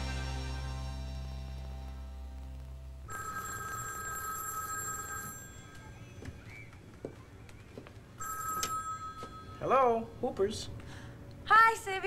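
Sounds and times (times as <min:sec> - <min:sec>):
payphone ringing: 0:03.1 - 0:06.0, 0:08.2 - 0:09.8.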